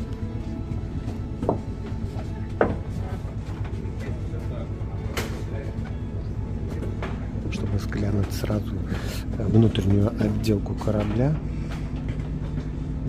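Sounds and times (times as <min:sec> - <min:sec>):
ship machinery drone: 0:00.0 - 0:13.0.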